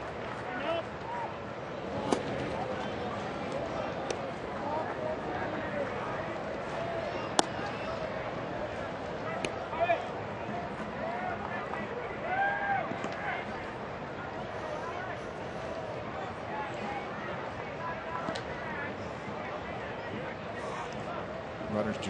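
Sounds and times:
crowd chatter: 0.0s - 22.0s
baseball smacking into glove: 7.3s - 7.7s.

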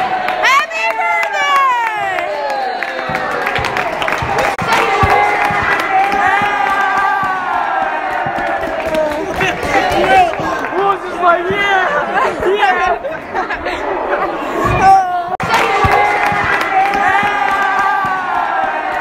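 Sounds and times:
crowd shouting and cheering: 0.0s - 19.0s.

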